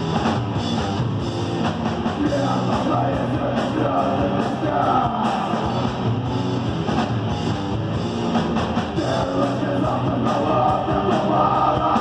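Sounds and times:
bass guitar: 0.0s - 12.0s
distorted electric guitar: 0.0s - 12.0s
drum kit: 0.0s - 12.0s.

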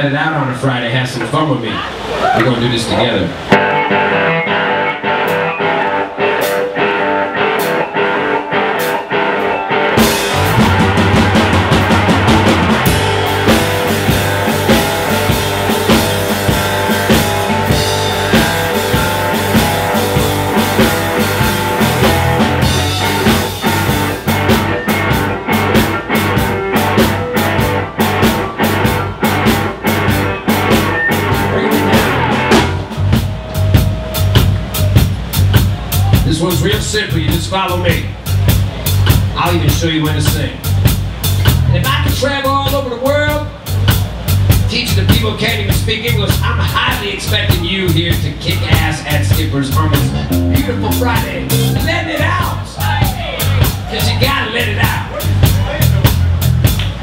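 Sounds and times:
drums: 0.0s - 57.0s
bass guitar: 1.8s - 57.0s
guitar playing rhythmic riff: 3.5s - 33.0s, 49.8s - 52.2s.

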